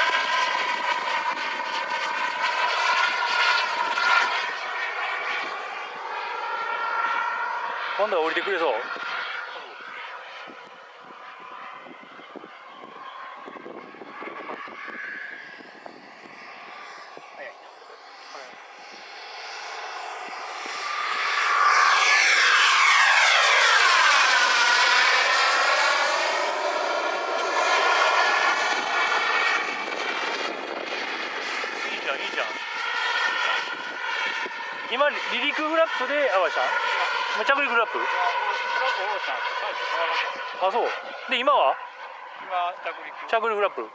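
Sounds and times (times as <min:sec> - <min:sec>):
model jet whine flying by: 0:00.0 - 0:43.9.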